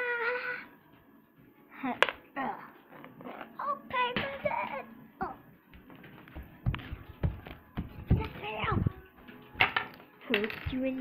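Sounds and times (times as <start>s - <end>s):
toys clattering on wooden table: 9.6s - 11.0s.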